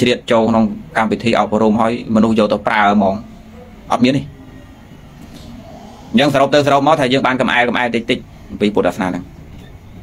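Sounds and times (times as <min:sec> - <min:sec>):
man speaking: 0:00.0 - 0:04.4, 0:06.1 - 0:09.3
low steady background noise: 0:00.0 - 0:10.0.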